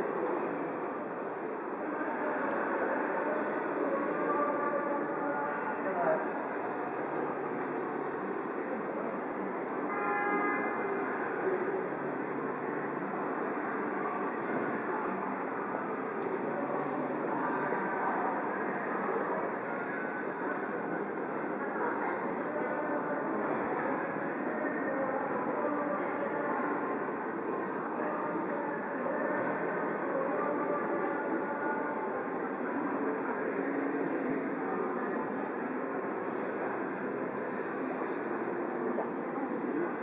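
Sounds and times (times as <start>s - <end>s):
hubbub of crowd voices: 0.0s - 40.0s.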